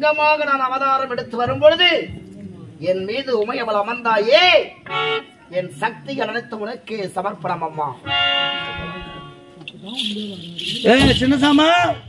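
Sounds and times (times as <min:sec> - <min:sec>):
anklet bells jingling: 0:08.5 - 0:12.0.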